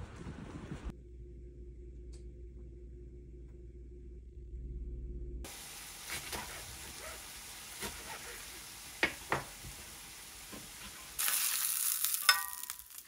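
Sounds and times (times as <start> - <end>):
food sizzling in a frying pan: 5.5 - 13.0
metal tongs clinking on pan: 11.2 - 13.0.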